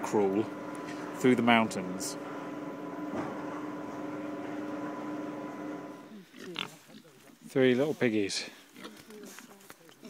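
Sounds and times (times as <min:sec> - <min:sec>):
pigs grunting: 0:06.1 - 0:07.2.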